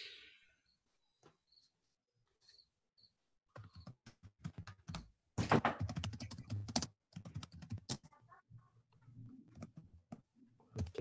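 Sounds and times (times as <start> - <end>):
typing on computer keyboard: 3.6 - 8.1.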